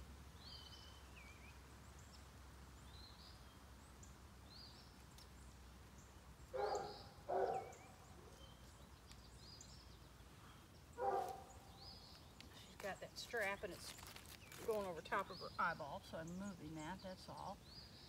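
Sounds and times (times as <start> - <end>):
songbird chirping: 0.0 - 18.0.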